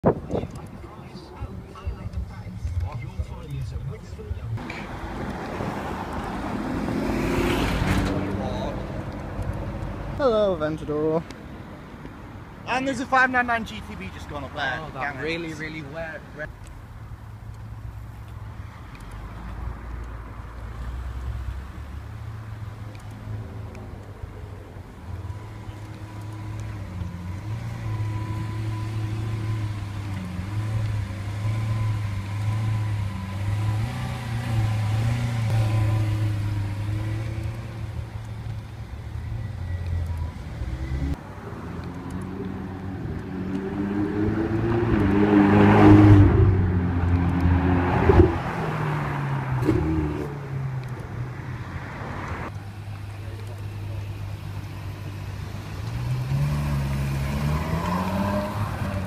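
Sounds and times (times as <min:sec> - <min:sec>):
car engine revving pulling away: 0:02.3 - 0:10.2, 0:25.0 - 0:59.0
sports car passing by: 0:04.0 - 0:10.2, 0:39.8 - 0:59.0.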